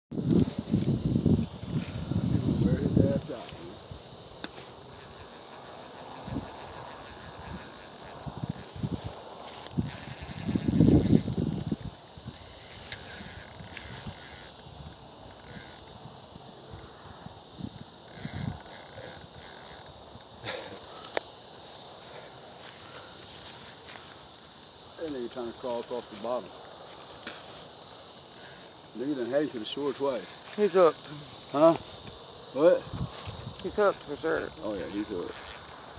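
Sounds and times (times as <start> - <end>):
low rumbling on microphone: 0.2 - 3.3
fishing reel ratchet buzzing: 0.4 - 16.0, 17.7 - 21.6, 24.6 - 32.0, 33.2 - 35.9.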